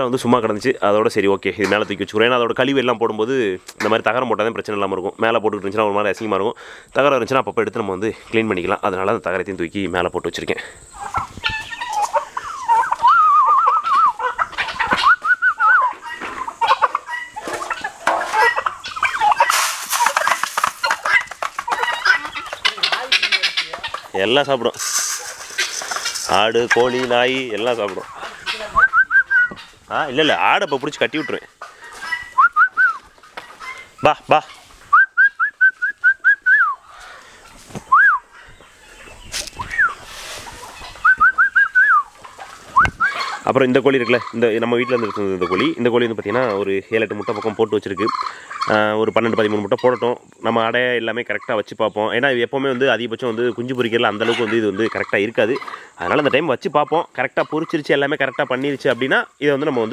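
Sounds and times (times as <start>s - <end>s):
chickens and turkeys clucking: 0.0s - 59.9s
wavering high bird call: 11.6s - 16.2s
person whistling short notes: 15.0s - 15.9s, 32.4s - 33.0s, 37.9s - 38.2s, 41.0s - 42.0s.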